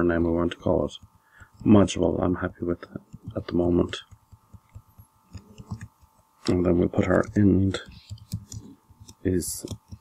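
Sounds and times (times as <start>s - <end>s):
faint hum: 0.0s - 10.0s
computer keyboard keystrokes: 3.1s - 10.0s.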